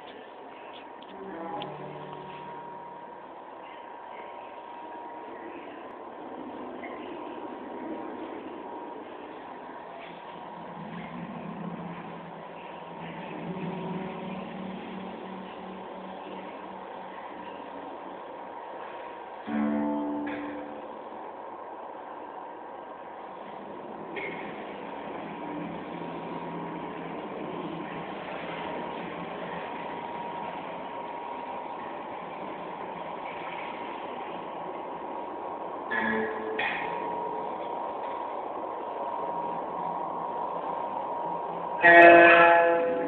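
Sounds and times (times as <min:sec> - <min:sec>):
low hum with hiss: 0:00.0 - 0:43.0
faint high steady tone: 0:19.4 - 0:21.4.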